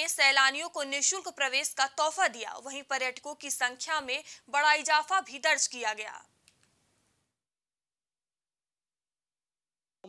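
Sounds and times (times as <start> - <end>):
woman speaking: 0.0 - 6.3
faint clicks: 6.4 - 6.8.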